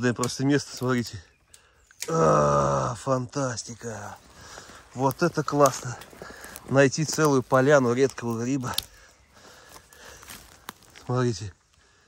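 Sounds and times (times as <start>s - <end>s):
footsteps on dry forest litter: 3.7s - 12.0s.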